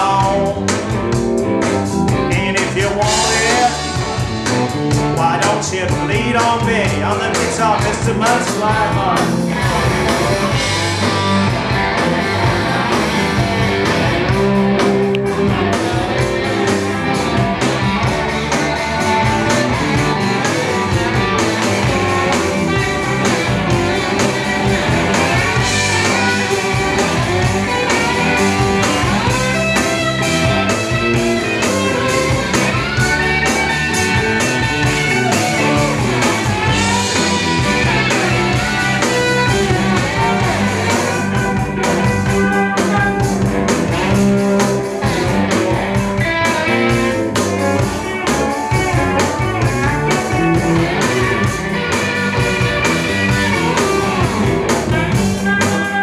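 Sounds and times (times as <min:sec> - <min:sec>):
blues-rock band playing: 0:00.0 - 0:56.0
electric guitar lead lines: 0:00.0 - 0:56.0.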